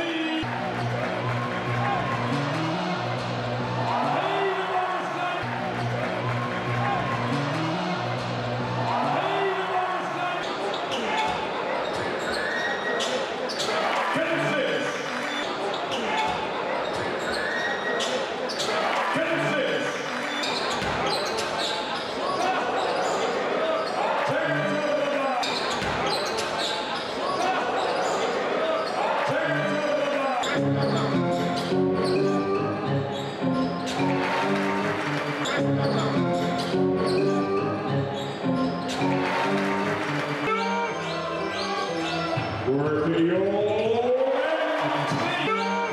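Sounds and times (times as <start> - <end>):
voices in echoing hall: 0.0 - 31.8, 38.1 - 45.9
music: 0.4 - 4.7, 5.3 - 9.5, 24.3 - 25.0, 29.3 - 43.6, 44.6 - 45.9.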